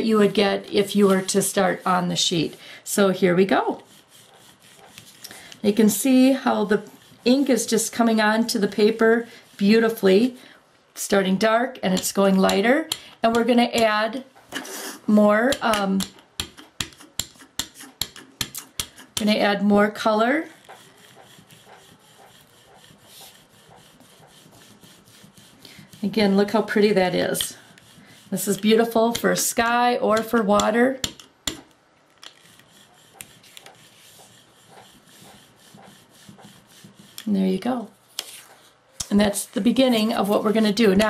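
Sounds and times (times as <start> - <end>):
rubber roller rasping on ink pad: 0.1 - 10.3, 19.0 - 30.5, 32.3 - 37.6.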